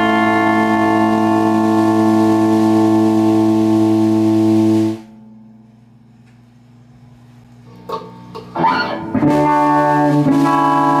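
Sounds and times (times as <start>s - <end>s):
electric guitar chord: 0.0s - 5.9s, 7.7s - 11.0s
faint amp hum and hiss: 0.0s - 11.0s.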